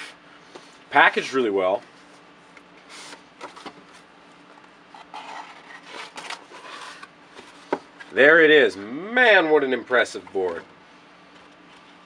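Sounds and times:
cardboard rubbing and scraping: 4.9 - 7.8.

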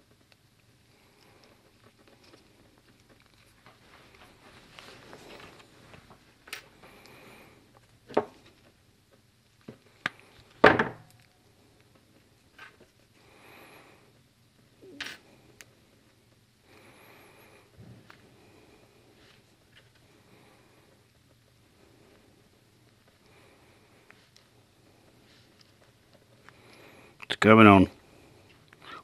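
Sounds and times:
soft rustling: 1.0 - 7.0, 15.4 - 27.2.

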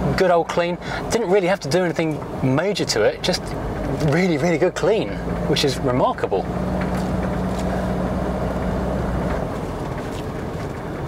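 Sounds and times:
car engine drone: 0.0 - 11.0
road noise: 0.0 - 11.0.

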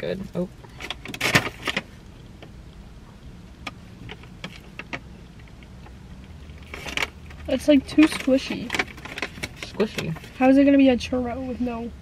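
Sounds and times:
steady low hum: 0.0 - 12.0
paper bag rustling: 6.6 - 10.4.

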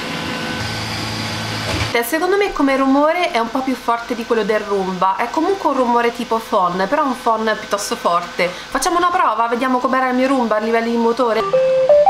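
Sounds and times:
faint high whine: 0.0 - 1.8.

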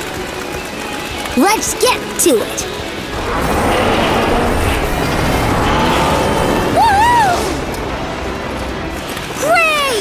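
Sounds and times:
rumble of cartoon vehicles: 0.0 - 10.0.

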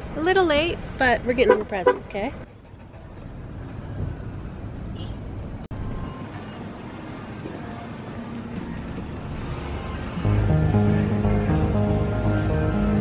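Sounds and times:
low outdoor traffic rumble: 0.0 - 13.0.

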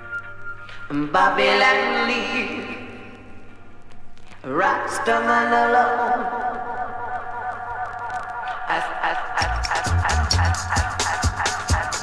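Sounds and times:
reggae band playing: 9.4 - 12.0.

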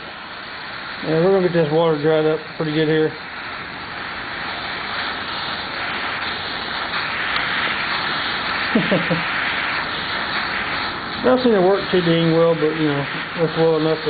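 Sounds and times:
gas torch flame hissing: 0.0 - 14.0.

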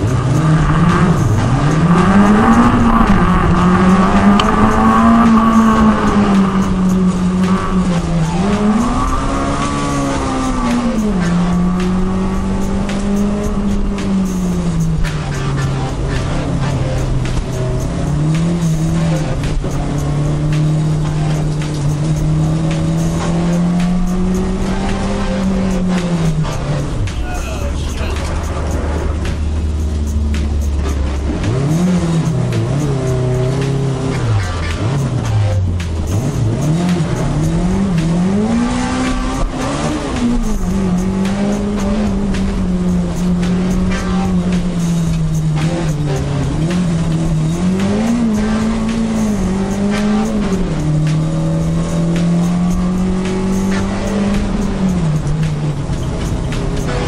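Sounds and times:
car engine revving hard: 0.0 - 57.0.

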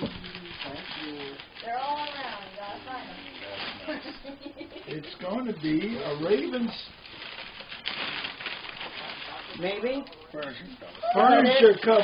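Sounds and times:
wrapping paper rustling and tearing: 0.0 - 4.2, 5.0 - 12.0.

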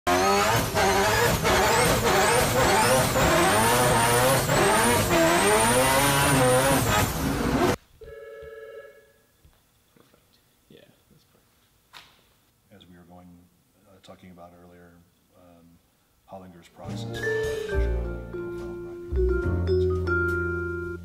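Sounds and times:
race car engine at full throttle: 0.1 - 7.8
turbo whistle: 17.1 - 18.2.

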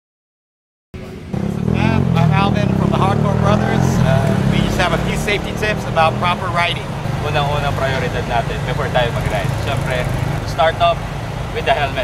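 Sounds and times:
engine idling: 1.0 - 12.0
man talking: 1.4 - 12.0.

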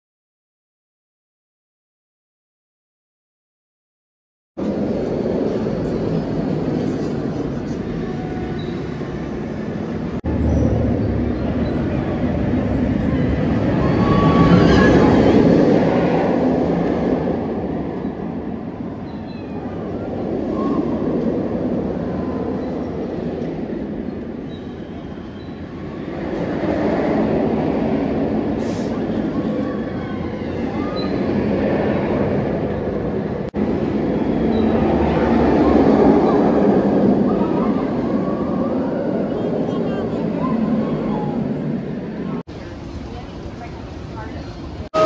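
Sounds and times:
roller coaster rumbling on track: 4.6 - 45.0.

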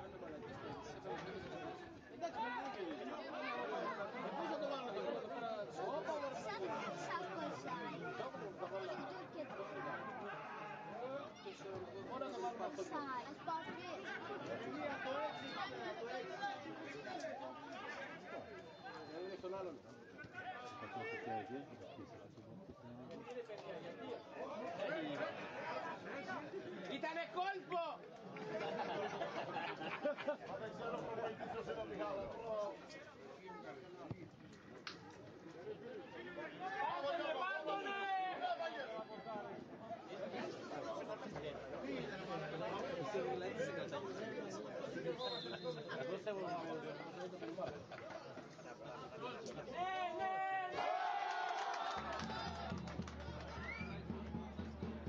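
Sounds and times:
indistinct chatter: 0.0 - 55.0
people talking at once: 0.0 - 55.0.

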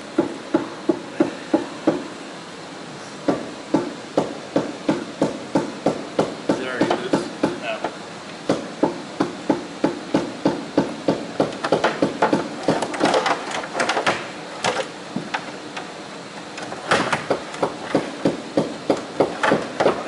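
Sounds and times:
hammer blows inside boat hull: 3.3 - 7.7, 8.5 - 13.2.

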